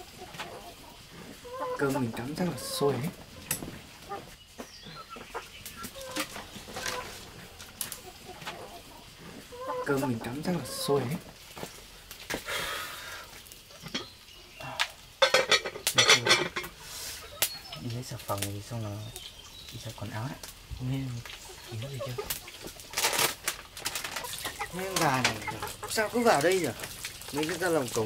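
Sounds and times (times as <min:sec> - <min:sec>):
chickens clucking and cackling: 0:00.0 - 0:28.0.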